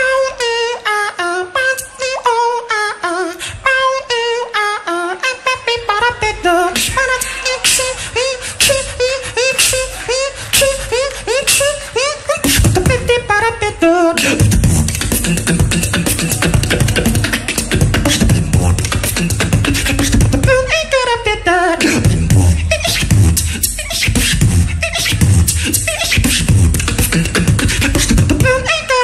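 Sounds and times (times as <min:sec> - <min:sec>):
beatboxer vocal notes: 0:00.0 - 0:29.0
clicking mouth percussion: 0:14.2 - 0:20.4, 0:22.8 - 0:28.5
deep bass sounds: 0:14.4 - 0:20.8, 0:22.0 - 0:28.6.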